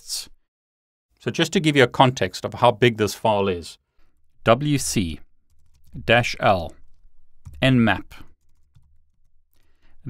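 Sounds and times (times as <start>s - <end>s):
computer keyboard keystrokes: 5.5s - 6.0s, 8.4s - 9.6s.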